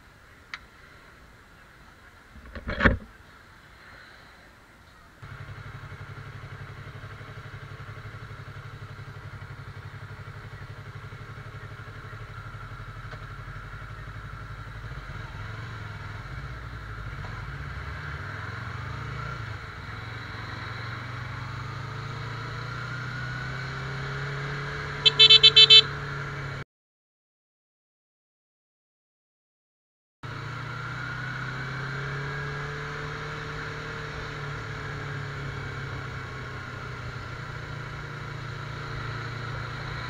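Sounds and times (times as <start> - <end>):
motorcycle engine running: 5.2 - 26.6, 30.3 - 40.0
horn beeps: 25.0 - 25.9.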